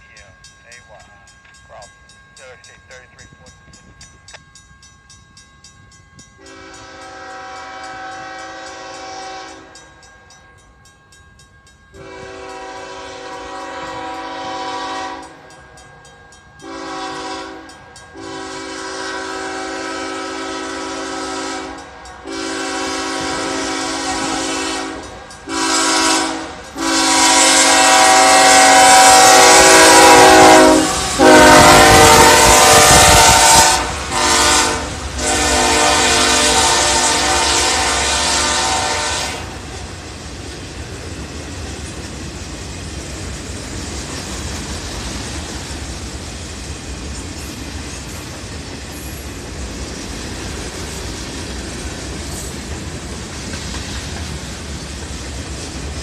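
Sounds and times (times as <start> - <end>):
locomotive air horn blasts: 6.4 - 9.8, 12.0 - 15.4, 16.6 - 39.7.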